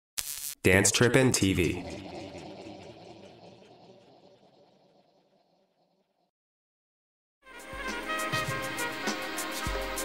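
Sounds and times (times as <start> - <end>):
echoing spoken voice: 0.6 - 3.5.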